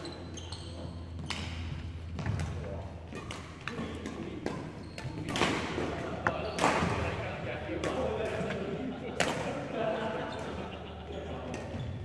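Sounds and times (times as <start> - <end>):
voices in a hall: 0.0 - 12.0
rackets hitting shuttlecocks: 1.1 - 9.7.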